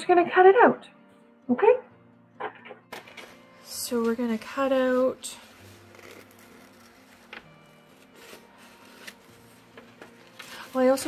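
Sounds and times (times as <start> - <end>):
paper rustling and sliding: 3.0 - 11.0.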